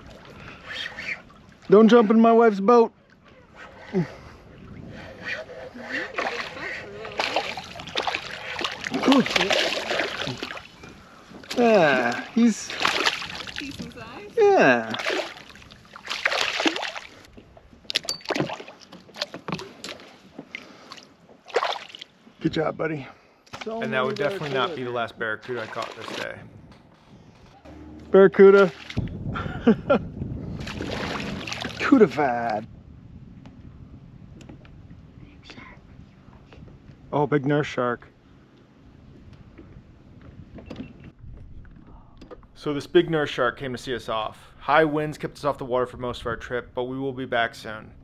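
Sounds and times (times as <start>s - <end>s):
wind and water rumble: 0.0s - 48.0s
fish splashing at surface: 6.1s - 10.7s, 14.9s - 17.2s, 30.6s - 31.8s.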